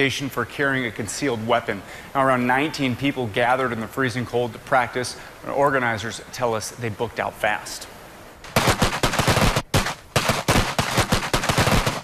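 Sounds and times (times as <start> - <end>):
handgun shots: 8.5 - 12.0.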